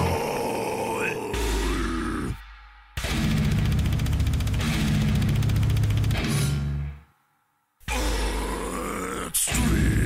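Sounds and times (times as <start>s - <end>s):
fast drum hits: 2.9s - 6.4s.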